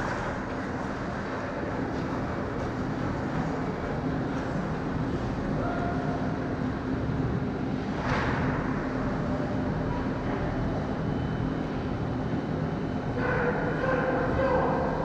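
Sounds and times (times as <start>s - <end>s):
ice rink rumble: 0.0s - 15.0s
low machinery hum: 0.0s - 15.0s.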